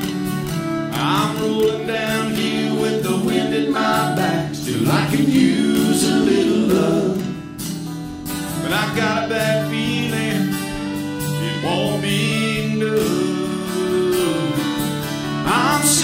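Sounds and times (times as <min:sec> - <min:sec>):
fiddle playing: 0:00.0 - 0:16.0
strummed acoustic guitars: 0:00.0 - 0:16.0.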